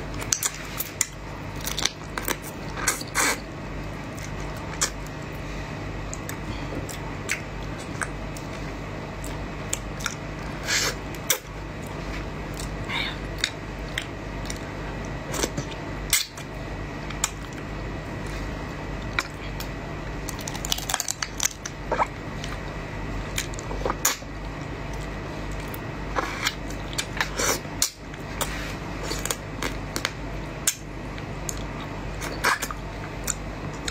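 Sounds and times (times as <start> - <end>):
steady low hum: 0.0 - 33.9.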